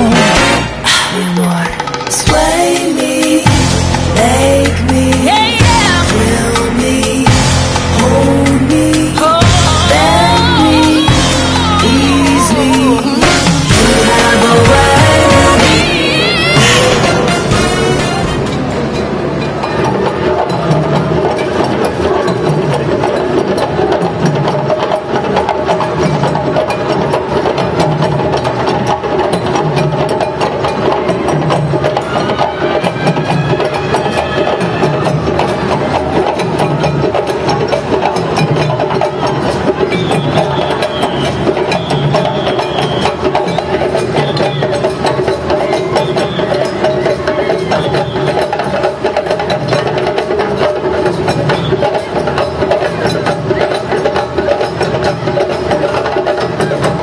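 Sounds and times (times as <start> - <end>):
deeper drum beat: 0.0 - 57.0
hand drums playing fast rhythm: 0.0 - 57.0.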